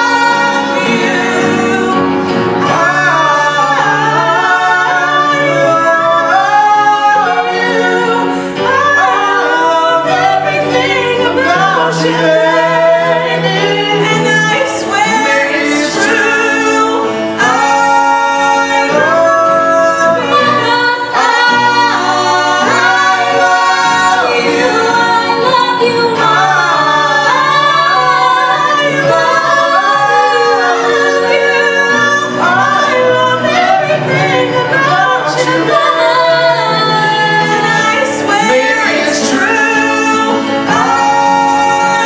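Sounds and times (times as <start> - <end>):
people singing in harmony: 0.0 - 42.0.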